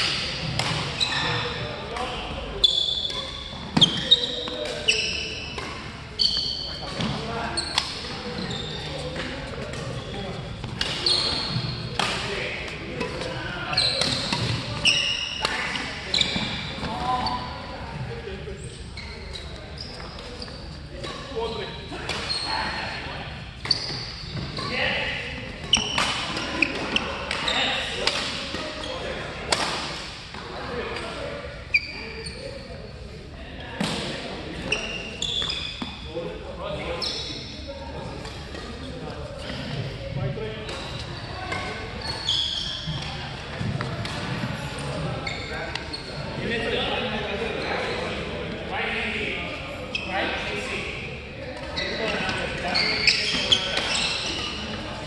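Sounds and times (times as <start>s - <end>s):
shoes squeaking on court floor: 0.0s - 33.1s, 33.8s - 55.0s.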